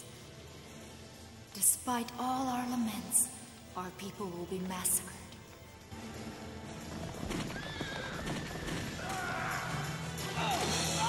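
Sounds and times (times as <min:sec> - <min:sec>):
background music: 0:00.0 - 0:11.0
hooves galloping: 0:05.5 - 0:10.6
horse whinnying: 0:07.3 - 0:09.8.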